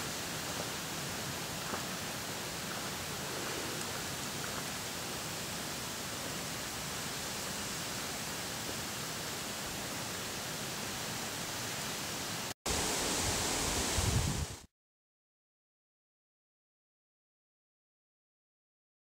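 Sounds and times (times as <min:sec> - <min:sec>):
outdoor background hiss: 0:00.0 - 0:14.7.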